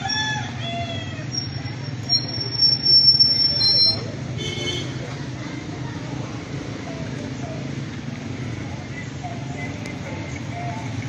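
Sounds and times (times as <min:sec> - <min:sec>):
rooster crowing: 0:00.0 - 0:01.5
low rumble of street noise: 0:00.0 - 0:11.0.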